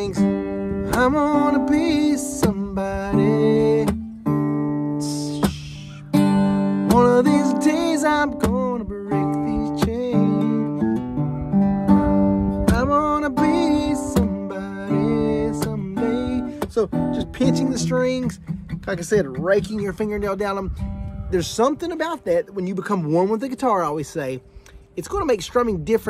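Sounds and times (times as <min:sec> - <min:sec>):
man singing: 0:00.0 - 0:20.7
acoustic guitar strummed: 0:00.0 - 0:26.0.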